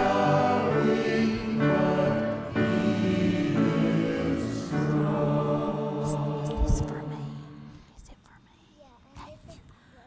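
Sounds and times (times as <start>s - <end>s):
congregation singing hymn chord: 0.0s - 7.8s
murmured voices: 0.0s - 7.9s
faint whispering: 6.6s - 10.0s.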